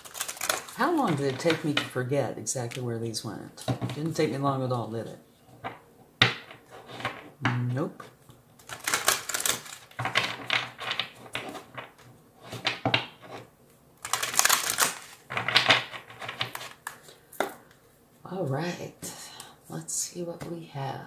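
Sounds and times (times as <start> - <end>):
cards being shuffled: 0.0 - 1.9, 8.0 - 17.8.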